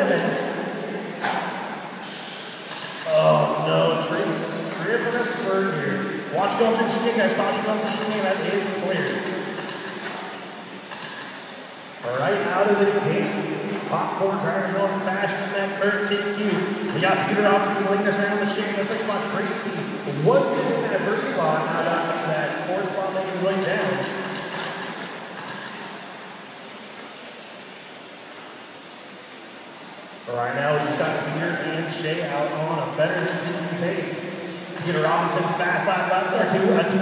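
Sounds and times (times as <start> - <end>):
radio-controlled cars whirring: 0.0 - 37.0.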